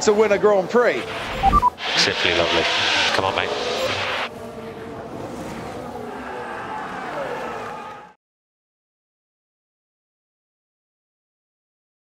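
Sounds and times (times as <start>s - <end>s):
racing car engine: 0.9s - 6.1s
hiss: 1.8s - 4.3s.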